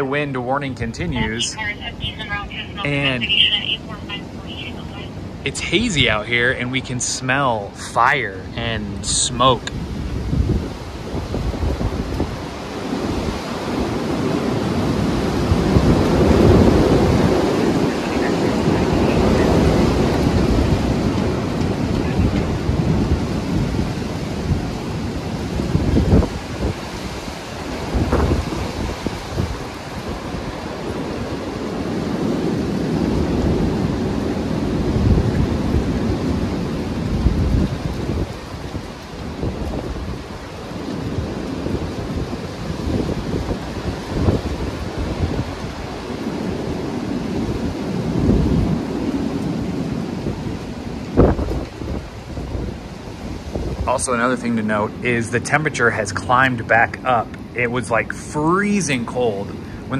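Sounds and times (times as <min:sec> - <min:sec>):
wind buffeting microphone: 0:00.0 - 0:59.9
wind gusts roaring through trees: 0:00.0 - 0:59.9.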